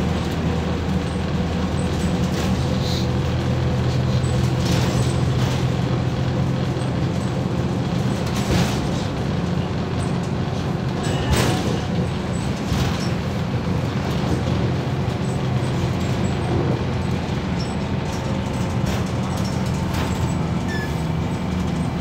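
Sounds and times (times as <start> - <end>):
bus body rattles: 0.0 - 22.0
bus diesel engine hum: 0.0 - 22.0.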